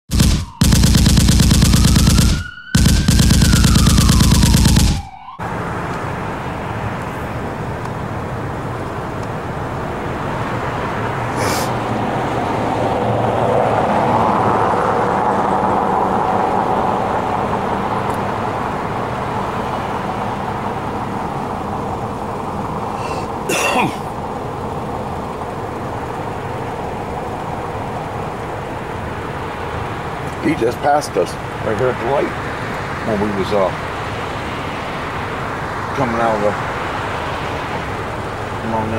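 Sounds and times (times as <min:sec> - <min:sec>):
traffic: 0:00.1 - 0:38.9.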